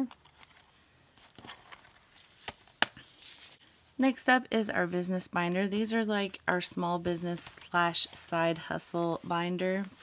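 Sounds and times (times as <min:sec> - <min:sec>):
faint rustling of envelopes: 0:00.0 - 0:04.0, 0:07.0 - 0:10.0.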